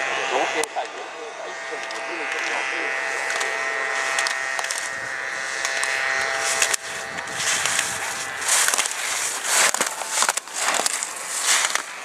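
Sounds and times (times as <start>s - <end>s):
skis scraping on hard snow: 3.2s - 12.0s
slalom gate poles clacking: 5.6s - 12.0s.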